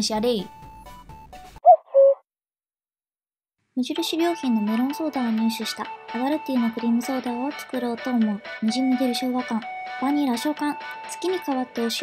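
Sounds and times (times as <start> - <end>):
faint background music: 0.0 - 1.0, 3.8 - 12.0.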